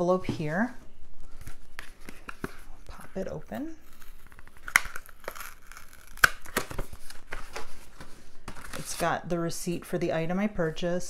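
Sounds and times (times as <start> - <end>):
paper envelope rustling: 1.2 - 9.2.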